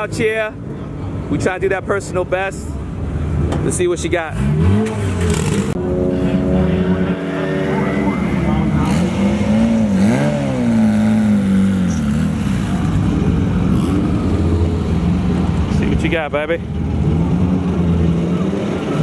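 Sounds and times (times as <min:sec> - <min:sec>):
car engine revving: 0:03.8 - 0:19.0.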